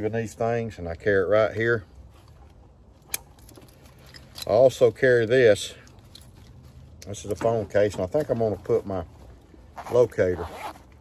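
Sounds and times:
handling of gear: 0:01.5 - 0:11.0.

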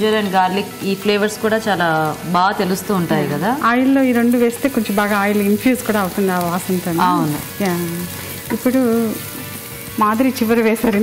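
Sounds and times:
woman speaking: 0:00.0 - 0:09.2
sizzling in hot oil: 0:00.0 - 0:11.0.

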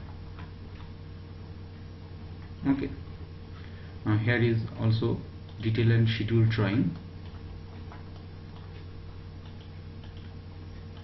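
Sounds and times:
electrical hum and hiss: 0:00.0 - 0:11.0
faint mouse clicks: 0:06.7 - 0:11.0.

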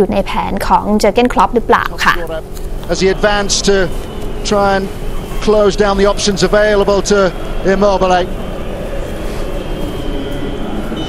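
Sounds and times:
stadium crowd noise: 0:02.8 - 0:11.0.

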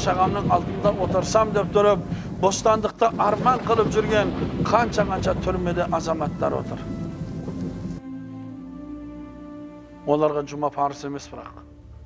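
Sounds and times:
steady hiss: 0:00.0 - 0:08.1
sustained tones music: 0:00.0 - 0:12.0.

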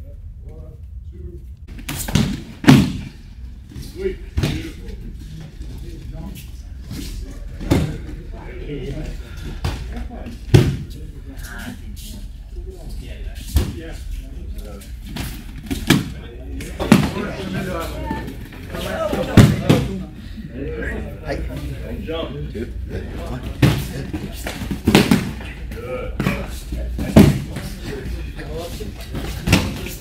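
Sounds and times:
bodies thudding on mats: 0:01.8 - 0:03.2.

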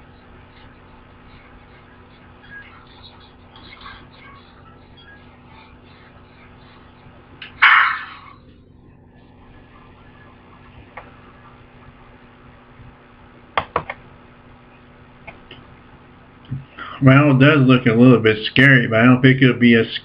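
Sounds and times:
sharp hits: 0:07.4 - 0:08.3.

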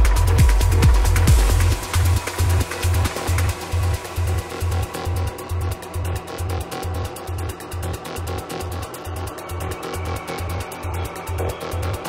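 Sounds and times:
kick drum: 0:00.0 - 0:08.6
pulsing bassline: 0:00.0 - 0:12.0
ticking hi-hats: 0:00.0 - 0:12.0.

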